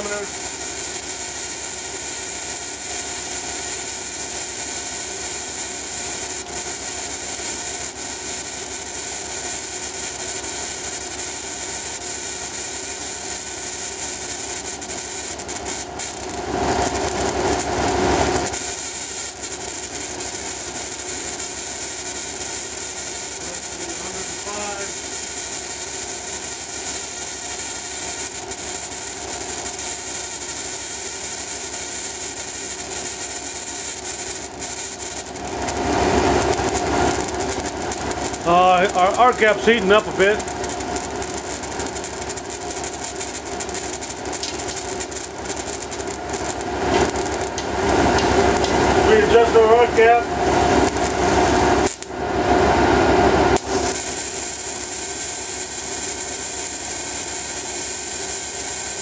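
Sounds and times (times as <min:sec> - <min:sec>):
tesla coil arcing buzz: 0:00.0 - 0:59.0
machine hum: 0:12.4 - 0:25.1, 0:34.4 - 0:54.0.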